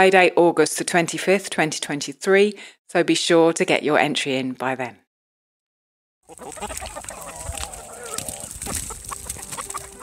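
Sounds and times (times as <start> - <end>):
chickens clucking: 6.2 - 10.0.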